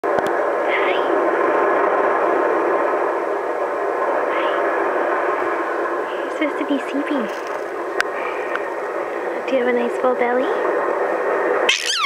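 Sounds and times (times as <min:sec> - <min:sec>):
baby squeaking: 0:11.7 - 0:12.0.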